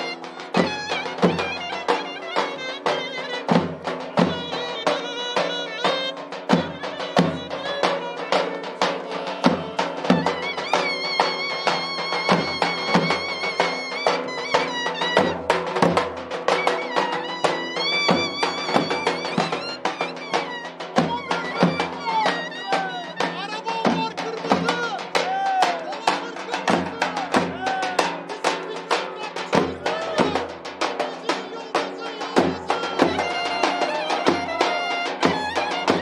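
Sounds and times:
large drums beating: 0:00.0 - 0:36.0
violin playing wavering melody: 0:00.7 - 0:03.6, 0:10.2 - 0:15.6, 0:16.5 - 0:23.3, 0:32.9 - 0:36.0.

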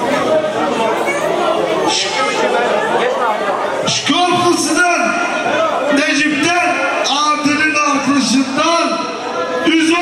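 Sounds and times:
people chattering in a hall: 0:00.0 - 0:10.0.

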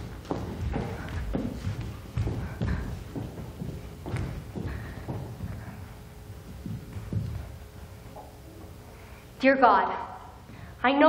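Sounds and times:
footsteps on wooden stage floor: 0:00.0 - 0:09.4, 0:10.2 - 0:10.8.

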